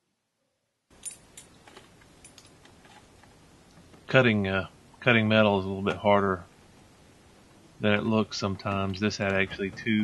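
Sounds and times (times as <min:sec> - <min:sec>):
faint hiss: 0:01.0 - 0:10.0.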